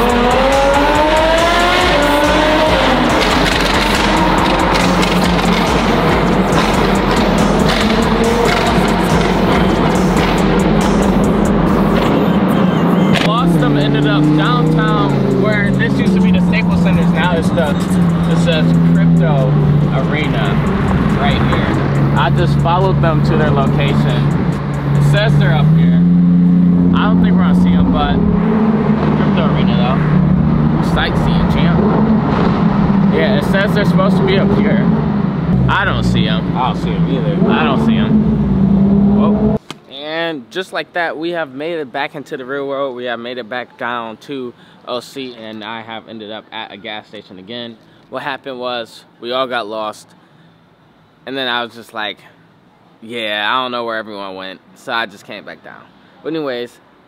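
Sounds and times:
song with deep bass and vocals: 0.0s - 32.4s
car engine revving: 0.0s - 39.6s
car running noise: 0.0s - 39.6s.

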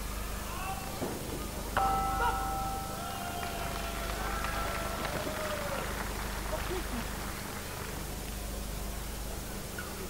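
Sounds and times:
boxing ring bell ringing: 1.8s - 4.7s.

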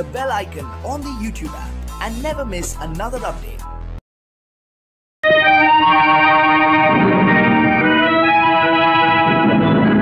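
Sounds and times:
instrumental film song: 5.2s - 10.0s.

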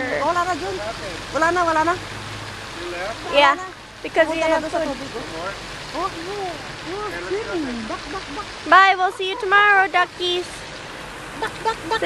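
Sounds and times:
fountain spray rushing: 0.0s - 12.0s
person's short voiced sound: 7.4s - 8.5s.

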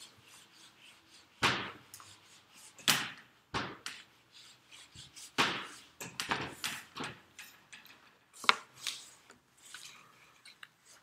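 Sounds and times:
eraser scrubbing whiteboard: 0.0s - 6.9s.

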